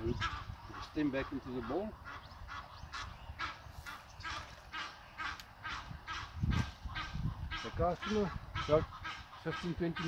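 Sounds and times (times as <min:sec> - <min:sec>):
bird calling: 0:00.0 - 0:10.0.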